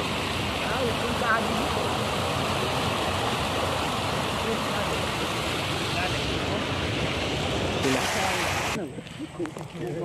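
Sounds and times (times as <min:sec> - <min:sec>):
fast water rushing: 0:00.0 - 0:08.8.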